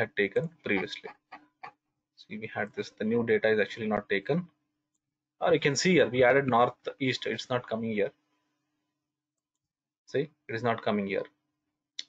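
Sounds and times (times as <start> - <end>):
man speaking: 0.0 - 1.1, 2.2 - 4.5, 5.4 - 8.1, 10.2 - 11.3.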